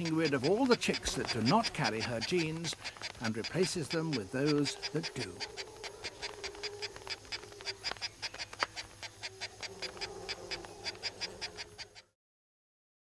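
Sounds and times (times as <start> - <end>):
rapid high chirps: 0.0 - 12.1.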